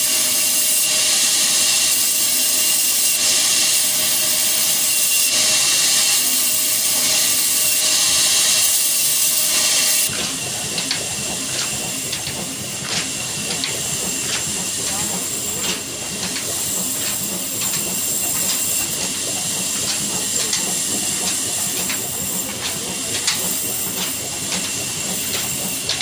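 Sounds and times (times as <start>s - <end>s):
hissing machine noise: 0.0s - 26.0s
diesel engine running steadily: 5.4s - 26.0s.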